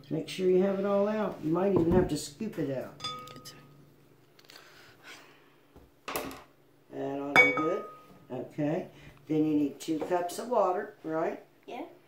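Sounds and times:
glass clinking on ceramic bowl: 3.0s - 3.8s, 7.4s - 8.2s.

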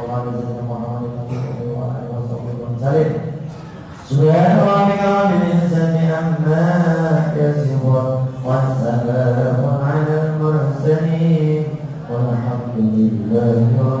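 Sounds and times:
man chanting a prayer: 0.0s - 14.0s.

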